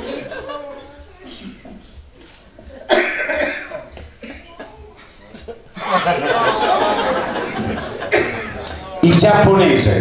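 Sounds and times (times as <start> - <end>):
man coughing: 2.9 - 4.6, 8.1 - 8.6.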